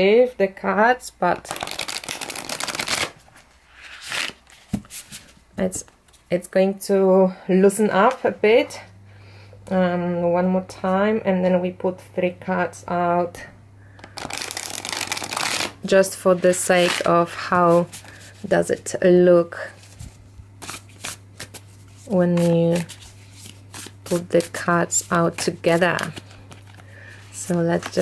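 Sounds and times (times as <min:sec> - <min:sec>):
cards riffle shuffling: 0:01.5 - 0:03.2, 0:14.0 - 0:15.8, 0:19.8 - 0:28.0.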